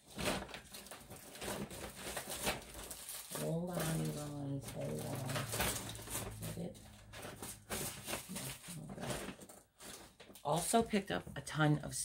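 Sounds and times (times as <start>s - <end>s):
handling noises: 0.0s - 11.4s.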